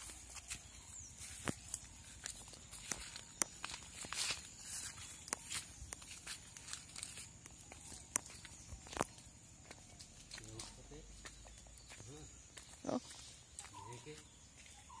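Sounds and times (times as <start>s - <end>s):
barefoot footsteps on wet leaves: 0.0s - 15.0s.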